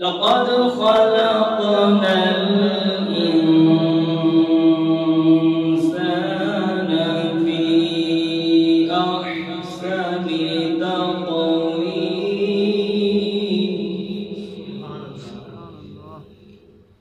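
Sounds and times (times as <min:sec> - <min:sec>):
man chanting melodically: 0:00.0 - 0:16.8.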